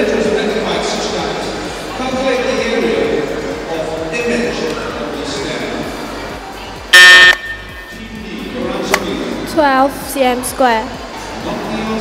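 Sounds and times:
background music: 0.0s - 12.0s
quiz buzzer: 6.9s - 7.9s.

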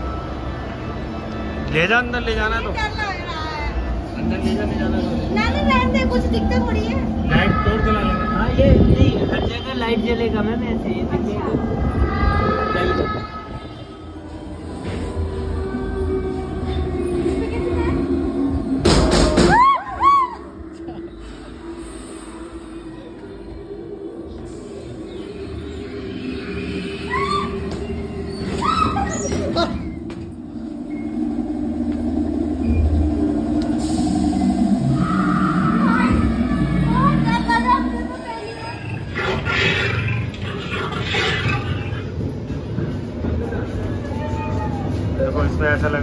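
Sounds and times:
ride car rumbling on track: 0.0s - 46.0s
loud growling roar: 33.4s - 42.1s.

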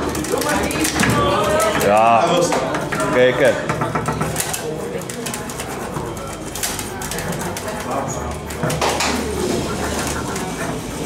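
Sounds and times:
table football clicks and clacks: 0.0s - 9.2s
murmuring voices: 0.0s - 11.0s.

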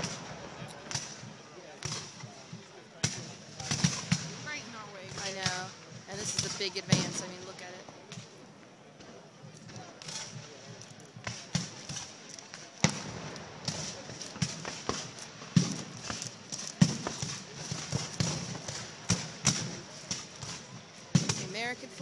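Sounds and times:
muskets firing: 0.0s - 2.3s, 3.0s - 8.4s, 9.6s - 22.0s.

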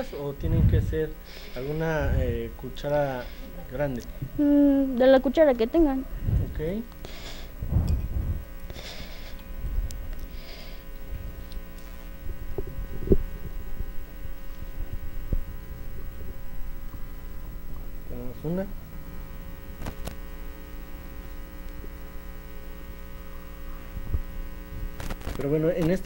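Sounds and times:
electrical mains hum: 0.0s - 26.0s
microphone handling thumps: 0.4s - 1.0s, 1.9s - 2.5s, 6.1s - 8.7s, 11.0s - 18.1s, 19.6s - 20.3s.

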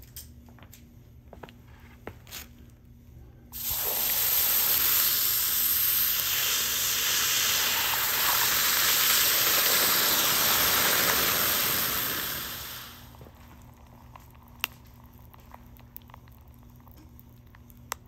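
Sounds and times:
hot metal sizzling on ice: 3.6s - 13.3s.

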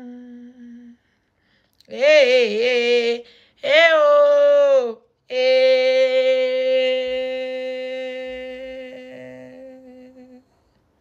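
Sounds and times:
woman humming: 0.0s - 1.0s, 1.9s - 10.5s.

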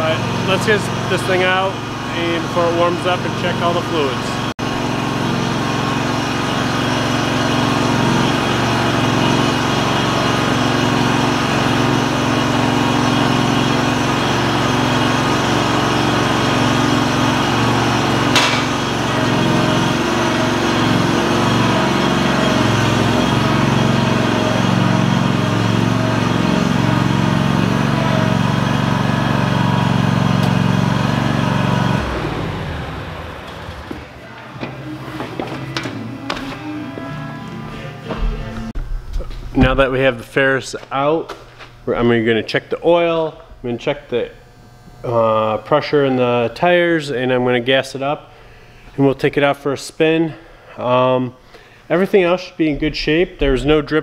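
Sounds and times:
mower engine running: 0.0s - 47.6s.

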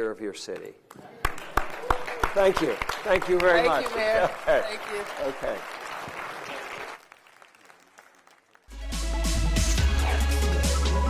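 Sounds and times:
applause: 0.5s - 8.8s
scattered claps: 0.6s - 8.8s
electronic music with heavy bass: 8.8s - 11.0s.

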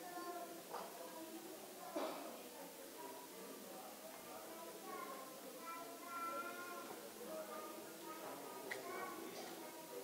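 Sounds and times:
young child's high-pitched voice: 0.0s - 2.2s, 4.5s - 10.0s
indistinct quiet talking: 0.0s - 10.0s.

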